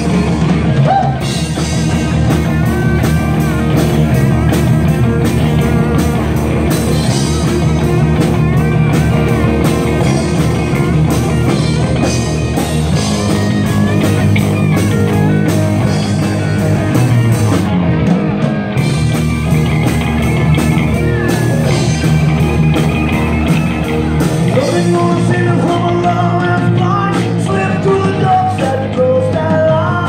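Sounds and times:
lead guitar bending in pitch: 0:00.0 - 0:26.2
live rock band playing: 0:00.0 - 0:30.0.

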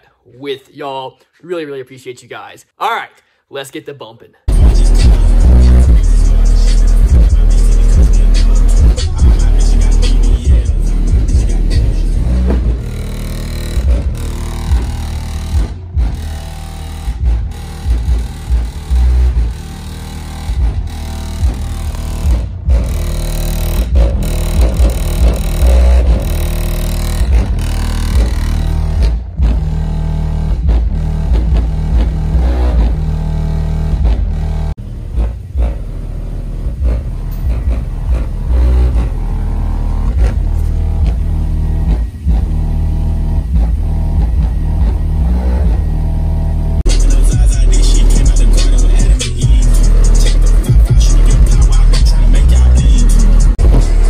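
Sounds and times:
bass-heavy music from car speakers: 0:04.5 - 0:54.0.

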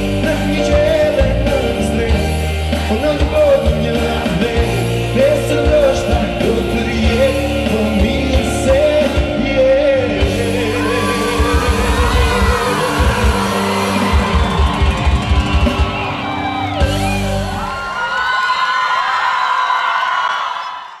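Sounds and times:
electric guitar: 0:00.0 - 0:18.1
drums: 0:00.0 - 0:18.4
keyboard: 0:00.0 - 0:18.5.

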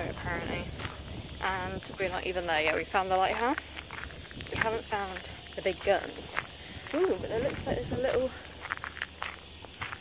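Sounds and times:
woman talking: 0:00.0 - 0:00.8, 0:01.4 - 0:03.8, 0:04.4 - 0:08.5
steady high hiss: 0:00.0 - 0:10.0.

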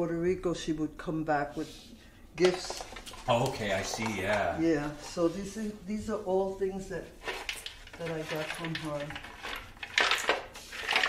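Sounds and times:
hollow bowls clattering: 0:07.2 - 0:11.0.

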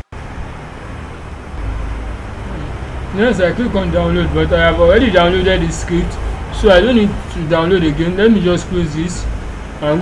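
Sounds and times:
low background rumble with hiss: 0:00.2 - 0:10.0.

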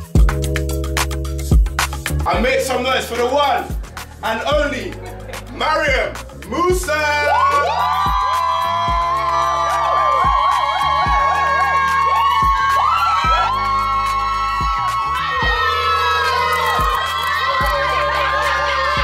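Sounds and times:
party music with deep bass: 0:00.0 - 0:19.0
crowd cheering and whooping: 0:06.9 - 0:19.0.

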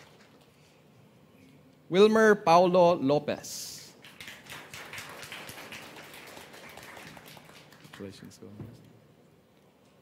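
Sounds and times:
crowd applauding: 0:04.0 - 0:08.3.

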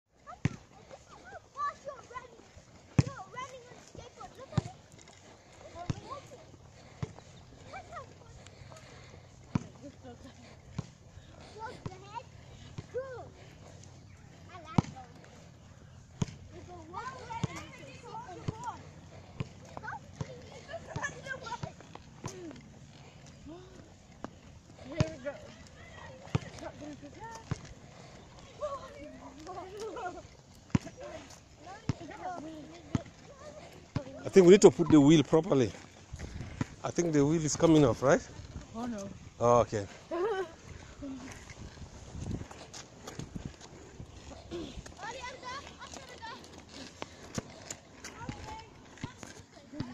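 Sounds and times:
small wheels rolling on asphalt: 0:00.1 - 0:49.9.

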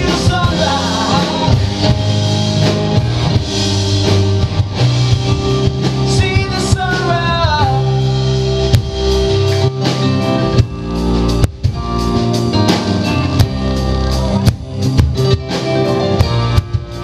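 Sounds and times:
bass guitar: 0:00.0 - 0:17.0
drum kit beat: 0:00.0 - 0:17.0
electric guitar: 0:00.0 - 0:17.0
electric keyboard: 0:00.0 - 0:17.0.

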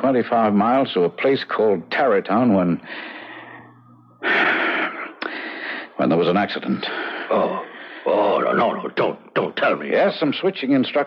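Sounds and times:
person gasping: 0:02.9 - 0:05.9.

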